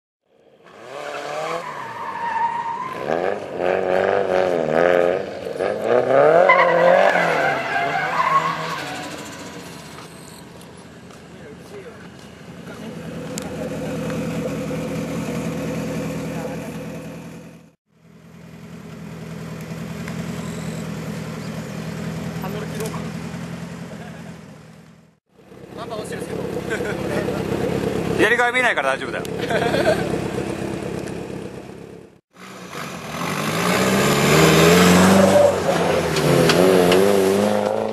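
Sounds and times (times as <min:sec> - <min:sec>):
car engines revving: 0:00.4 - 0:37.9
car engine idling: 0:08.9 - 0:32.2.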